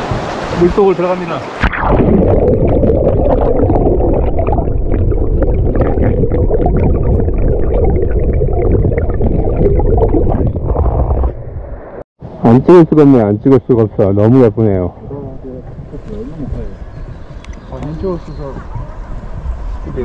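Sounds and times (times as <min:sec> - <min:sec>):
muffled underwater stream rushing: 0:00.0 - 0:12.0.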